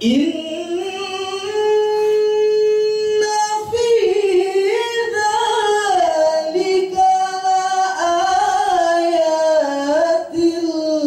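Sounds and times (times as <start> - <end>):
man chanting recitation: 0.0 - 11.0.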